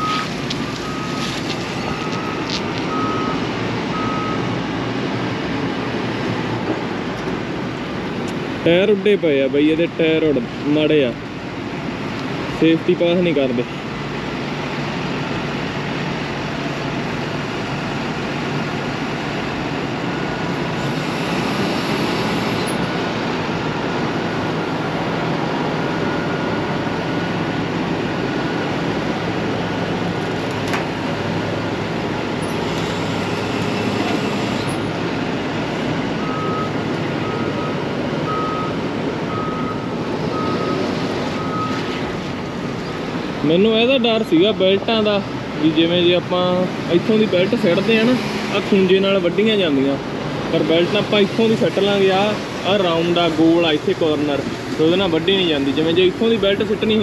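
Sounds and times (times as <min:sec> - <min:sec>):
backup alarm beeping: 0:00.0 - 0:04.5, 0:36.2 - 0:41.8
heavy vehicle engine running: 0:00.0 - 0:57.0.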